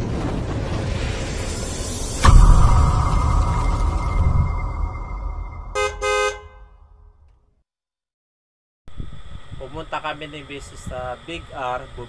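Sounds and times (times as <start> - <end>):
low rumble: 0.0 - 7.1
vehicle horn honking: 5.8 - 6.7.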